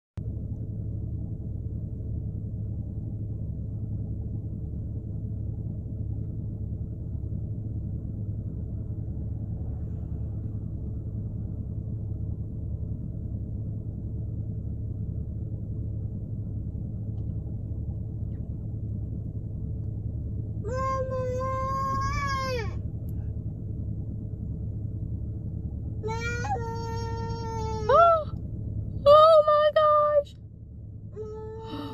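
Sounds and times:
car engine idling inside cabin: 0:00.2 - 0:31.9.

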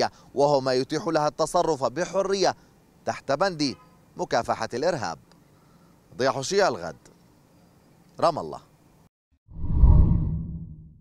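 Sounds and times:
deep whoosh: 0:09.5 - 0:11.0.

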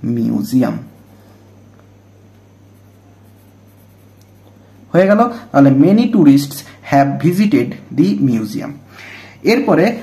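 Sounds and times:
man speaking: 0:00.0 - 0:01.0, 0:04.9 - 0:08.8, 0:09.4 - 0:10.0
steady low hum: 0:00.0 - 0:10.0
pen scratching on paper: 0:02.7 - 0:04.5.

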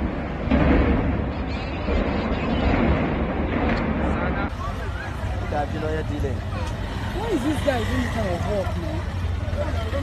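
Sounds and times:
people talking: 0:04.0 - 0:10.0.

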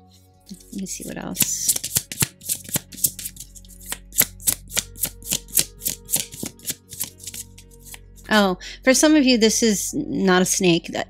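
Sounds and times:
soft background music: 0:00.0 - 0:11.0
cards being shuffled: 0:00.6 - 0:08.0.

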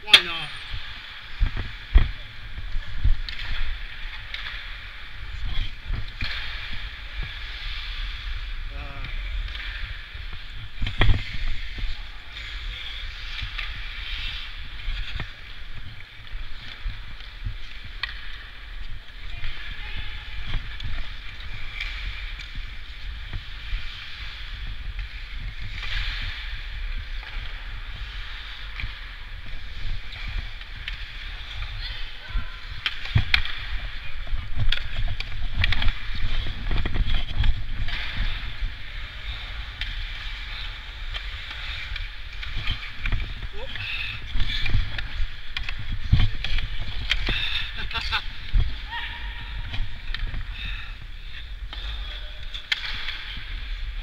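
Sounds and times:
skates scraping on ice: 0:00.0 - 0:54.0
wind rumble on microphone: 0:04.7 - 0:39.7
hockey stick clicks: 0:32.8 - 0:33.8, 0:51.6 - 0:53.4.

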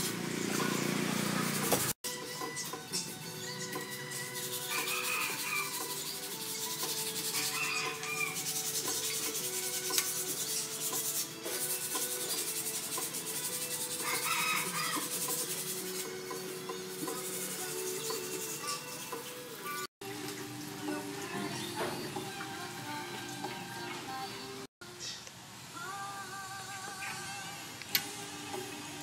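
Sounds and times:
soft background music: 0:02.0 - 0:24.7
cloth rag scrubbing metal: 0:03.7 - 0:19.3.

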